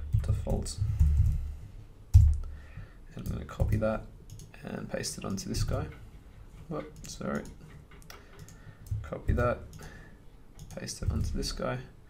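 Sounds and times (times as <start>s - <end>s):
keyboard typing clicks: 3.2s - 4.5s, 7.0s - 9.9s, 10.6s - 11.4s.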